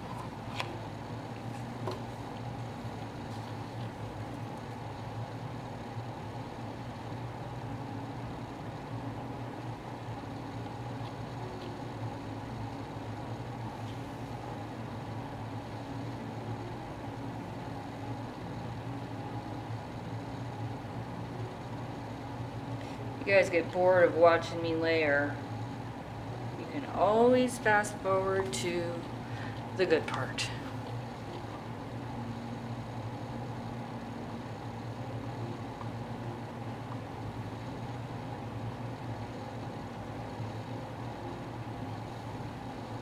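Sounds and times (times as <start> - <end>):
low mechanical hum: 0.0 - 43.0.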